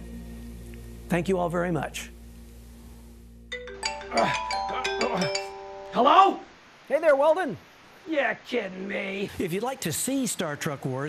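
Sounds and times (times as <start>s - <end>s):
phone ringtone chime: 3.5s - 6.0s.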